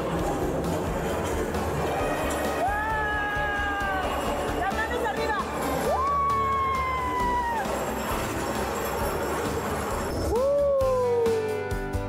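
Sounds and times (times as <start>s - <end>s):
background music: 0.0s - 12.0s
person whooping: 2.6s - 4.3s, 5.9s - 7.8s, 10.3s - 11.5s.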